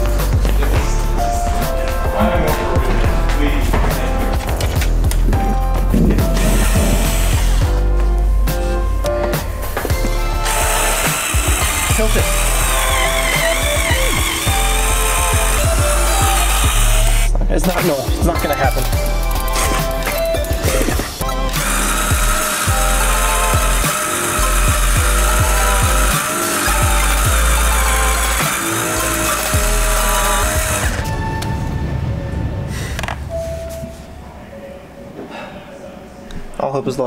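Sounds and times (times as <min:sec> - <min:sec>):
music with heavy bass line: 0:00.0 - 0:17.9, 0:19.0 - 0:31.0.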